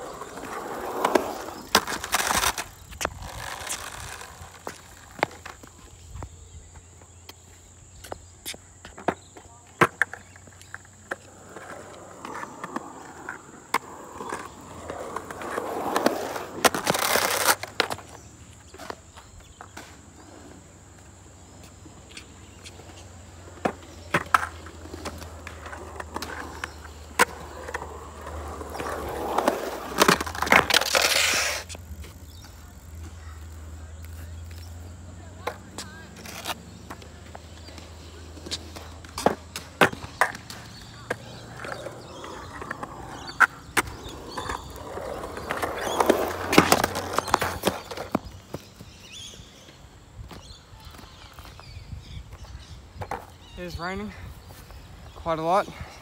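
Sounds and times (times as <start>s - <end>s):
skateboard clacking on concrete: 0.0s - 7.4s, 8.0s - 19.8s, 22.1s - 48.8s
skateboard wheels rolling on concrete: 0.0s - 56.0s.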